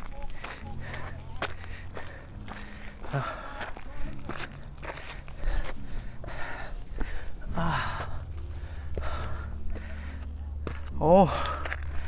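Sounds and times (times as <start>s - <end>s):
footsteps on dirt and rock: 0.0s - 12.0s.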